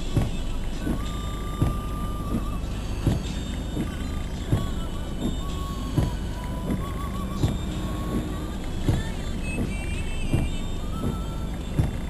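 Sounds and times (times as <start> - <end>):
road noise: 0.0 - 12.0
windscreen wipers thumping: 0.0 - 12.0.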